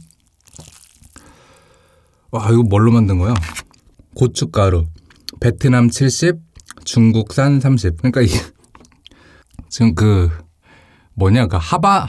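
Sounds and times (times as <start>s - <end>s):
wet eating sounds: 0.0s - 2.3s, 6.5s - 7.0s.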